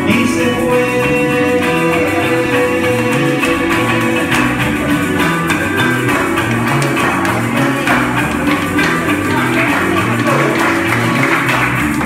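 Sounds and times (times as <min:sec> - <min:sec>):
drums: 0:00.0 - 0:12.0
electric bass: 0:00.0 - 0:12.0
strummed string instrument: 0:00.0 - 0:12.0.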